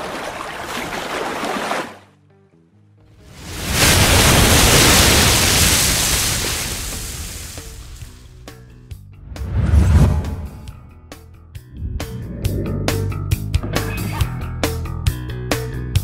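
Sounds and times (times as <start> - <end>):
rushing surf-like wave effect: 3.3 - 7.8
water splash effect: 3.3 - 8.2
logo music: 11.6 - 14.0.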